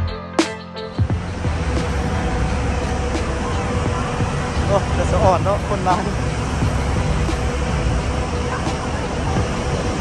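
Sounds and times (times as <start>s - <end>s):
road traffic rumble: 0.8s - 10.0s.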